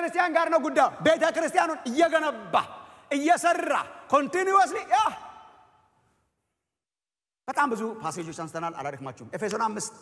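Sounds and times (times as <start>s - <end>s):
man speaking with room echo: 0.0s - 6.5s, 7.4s - 10.0s.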